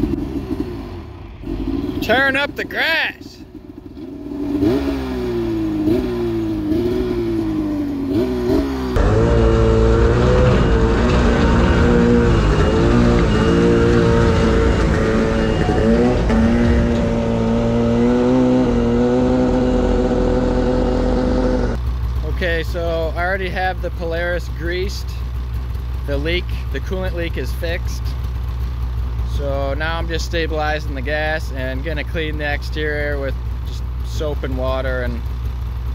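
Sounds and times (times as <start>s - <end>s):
snowmobile engine revving: 1.4s - 3.4s, 4.3s - 25.1s.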